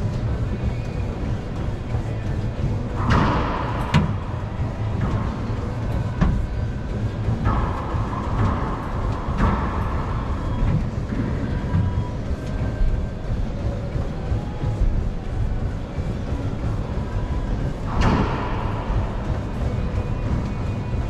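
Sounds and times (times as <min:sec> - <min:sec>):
low rumble: 0:00.0 - 0:21.0.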